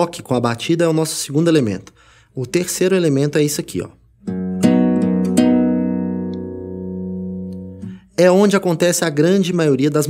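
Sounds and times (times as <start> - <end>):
classical guitar plucks: 4.2 - 8.1.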